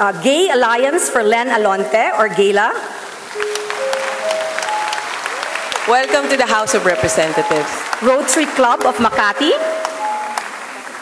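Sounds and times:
audience applauding: 3.2 - 11.0
rising steady tones: 3.3 - 8.0.

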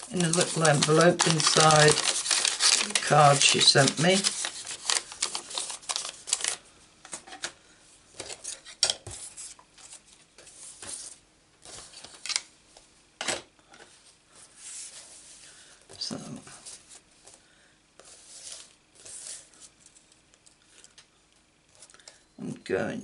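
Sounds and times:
paper envelope rustling: 0.0 - 6.6.

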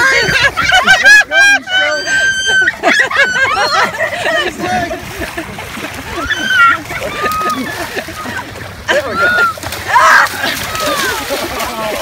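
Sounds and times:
people yelling and laughing: 0.0 - 12.0
water splashing: 0.0 - 12.0
high shout: 6.2 - 7.8, 9.0 - 11.2.

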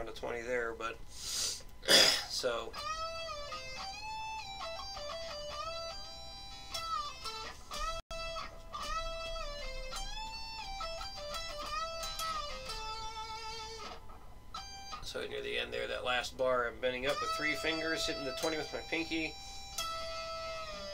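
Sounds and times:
electric guitar lead with bends: 2.7 - 15.0, 17.0 - 20.9.

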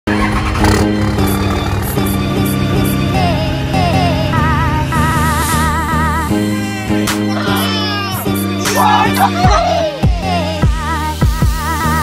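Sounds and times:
diesel engine rumbling: 0.1 - 11.1
background music with held notes: 0.1 - 12.0.

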